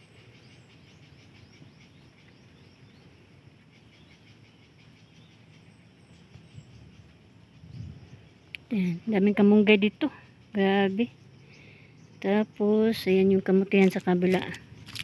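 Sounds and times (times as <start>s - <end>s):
birds chirping: 0.0s - 15.0s
insects calling: 0.0s - 15.0s
low steady background noise: 0.0s - 15.0s.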